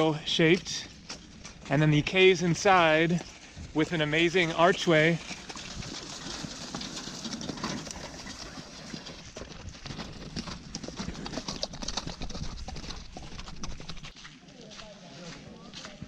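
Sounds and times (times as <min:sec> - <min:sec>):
horse hooves on dirt track: 0:00.0 - 0:16.0.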